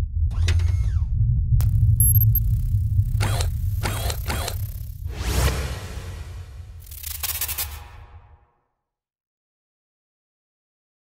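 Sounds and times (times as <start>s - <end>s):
low rumbling drone: 0.0s - 7.4s
mechanical whirs: 0.3s - 8.2s
whoosh: 1.8s - 8.4s
glitchy digital static: 6.2s - 8.0s.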